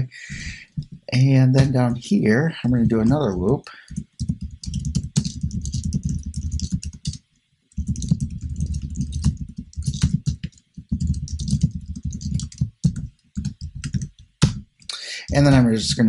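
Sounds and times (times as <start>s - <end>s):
fast typing on keyboard: 2.8s - 7.2s, 7.8s - 16.0s.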